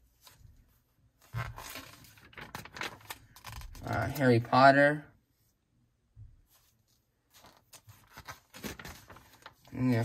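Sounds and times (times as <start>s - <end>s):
paper page rustling: 0.0s - 4.2s, 6.5s - 10.0s.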